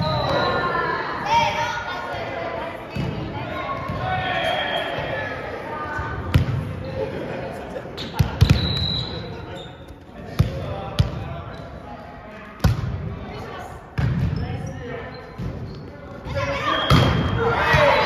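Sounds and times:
players' voices: 0.0s - 18.0s.

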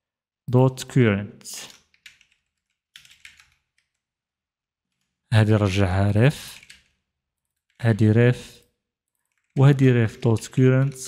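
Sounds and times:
faint keyboard typing: 1.5s - 4.1s, 6.4s - 11.0s.

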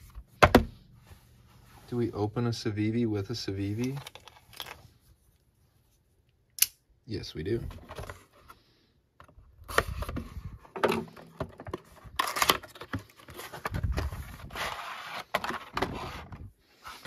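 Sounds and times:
plastic tray handled: 9.2s - 17.0s.

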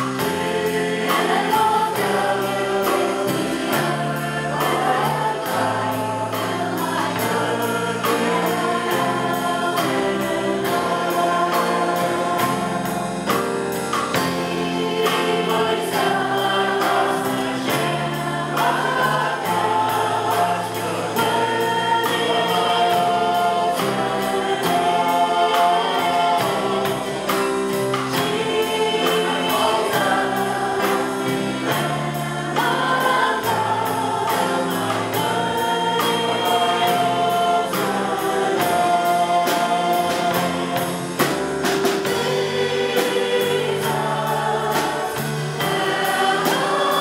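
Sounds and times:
drums: 0.0s - 47.0s
guitars: 0.0s - 47.0s
keyboard: 0.0s - 47.0s
voices singing together: 0.0s - 47.0s.

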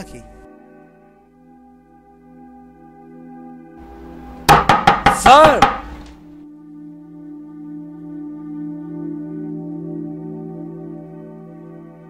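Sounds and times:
soft background music: 0.0s - 12.0s
sharp knocks or clicks: 4.4s - 6.2s.

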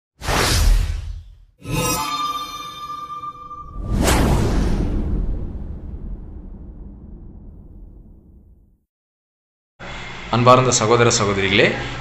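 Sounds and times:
ringing chime-like tone: 1.6s - 3.8s
rushing whoosh: 3.8s - 8.5s.

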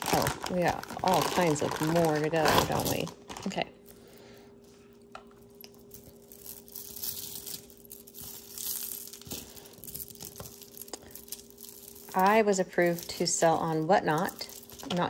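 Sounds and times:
faint steady hum: 0.0s - 15.0s
stone beads clicking: 5.7s - 15.0s.

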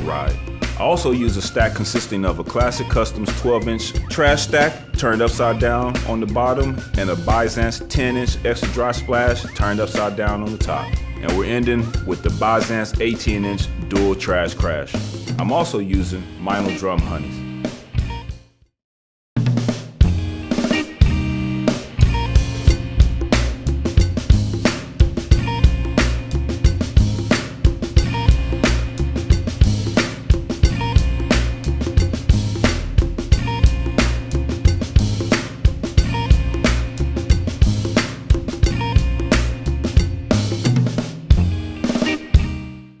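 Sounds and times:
drum kit groove: 0.0s - 18.3s, 19.4s - 42.7s
backing track: 0.0s - 18.4s, 19.4s - 42.8s.

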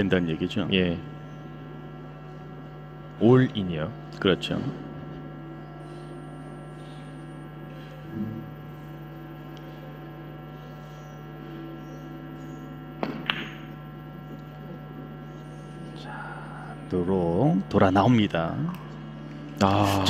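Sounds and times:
electrical hum: 0.0s - 20.0s
billiard balls clicking: 13.0s - 13.7s
cue striking ball: 13.0s - 13.8s.

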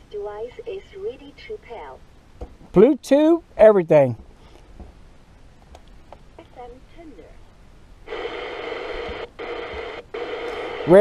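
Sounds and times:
radio static hiss: 0.0s - 2.1s, 6.4s - 11.0s
steady hum: 0.0s - 11.0s.

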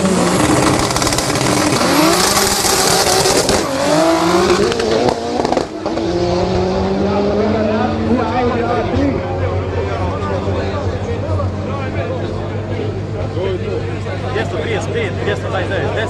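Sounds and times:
cars revving and accelerating: 0.0s - 16.0s.

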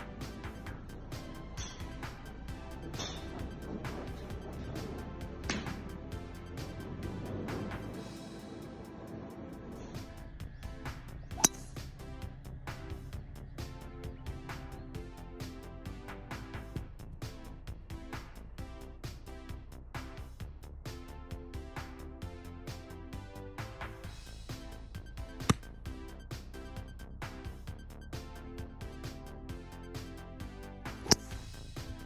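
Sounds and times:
background music with a beat: 0.0s - 32.0s
golf ball struck by club: 11.3s - 11.8s, 25.4s - 25.7s, 31.0s - 31.4s.

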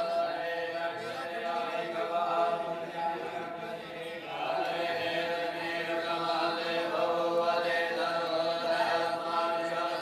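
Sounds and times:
voices chanting together: 0.0s - 10.0s.

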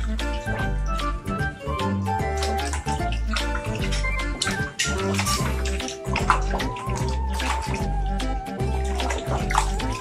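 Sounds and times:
background music: 0.0s - 10.0s
water splashing in a bathtub: 0.0s - 10.0s.

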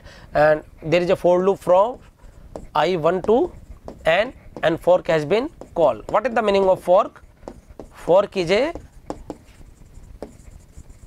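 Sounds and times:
marker pen writing on board: 0.9s - 11.0s.

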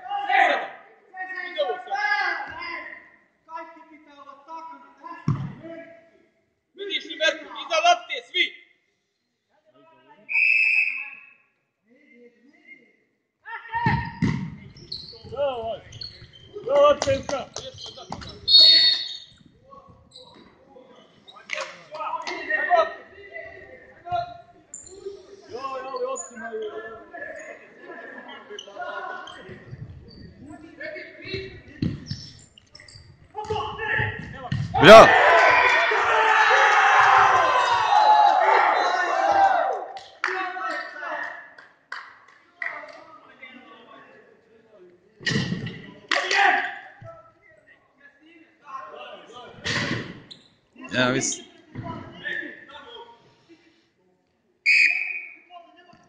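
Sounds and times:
ball kicked and bouncing: 5.3s - 5.6s, 13.8s - 14.6s, 31.8s - 32.2s, 33.4s - 34.8s
referee whistle blast: 10.3s - 11.4s, 54.7s - 55.4s.

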